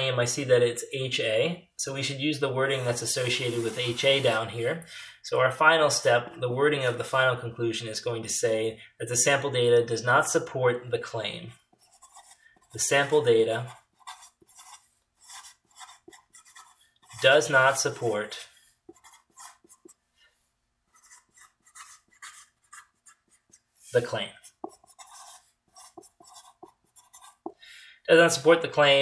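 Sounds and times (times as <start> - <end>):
marker writing on paper: 3.3 - 4.3, 11.6 - 27.6.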